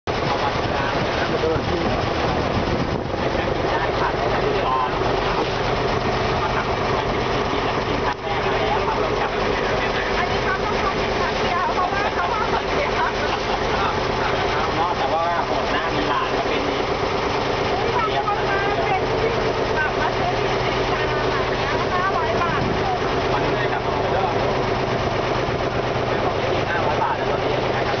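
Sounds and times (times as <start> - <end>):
boat engine droning: 0.1 - 28.0
people talking: 0.1 - 28.0
rushing water: 0.1 - 28.0.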